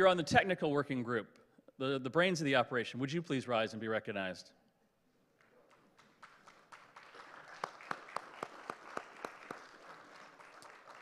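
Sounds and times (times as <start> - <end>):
audience clapping: 5.4 - 11.0.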